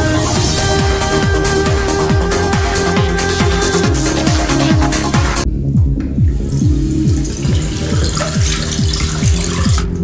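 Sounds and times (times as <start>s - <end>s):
electronic music with pulsing bass: 0.0s - 10.0s
tap water pouring into basin: 6.3s - 10.0s.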